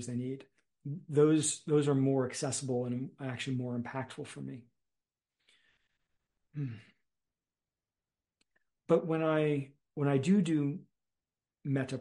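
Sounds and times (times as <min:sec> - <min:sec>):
man sighing: 0:06.5 - 0:07.0.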